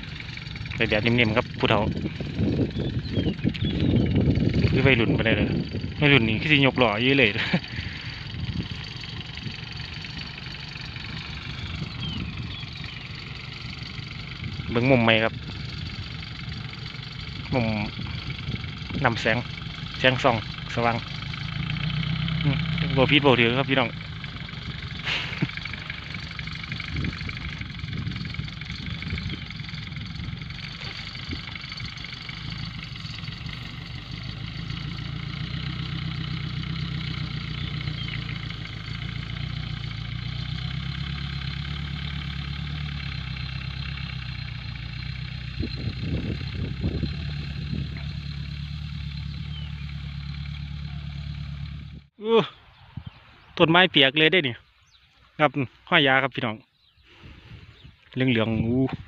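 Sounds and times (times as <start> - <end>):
tractor engine running: 0.0 - 52.2.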